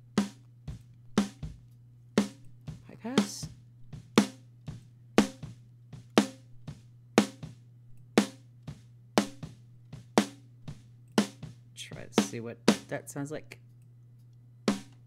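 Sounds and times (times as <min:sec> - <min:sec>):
quiet drum kit bleed: 0:00.0 - 0:13.6, 0:14.6 - 0:15.0
faint low hum: 0:00.0 - 0:15.0
snare drum hits: 0:05.2 - 0:07.5.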